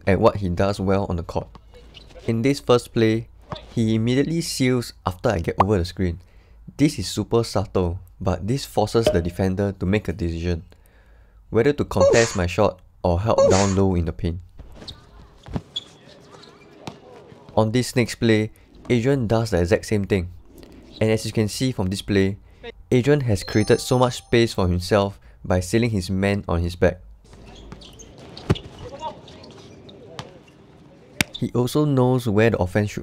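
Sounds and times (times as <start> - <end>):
faint players' voices calling: 14.8 - 17.6, 27.3 - 31.6
basketball hitting court: 27.3 - 28.8, 30.2 - 30.4.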